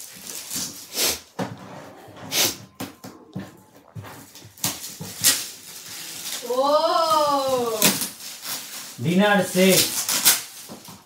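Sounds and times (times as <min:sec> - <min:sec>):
wrapping paper rustling: 0:00.0 - 0:01.4, 0:02.5 - 0:11.0.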